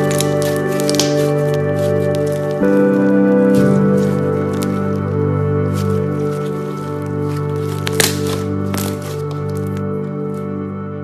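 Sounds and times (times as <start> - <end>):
slime squishing: 0.0 - 10.5
background music: 0.0 - 11.0.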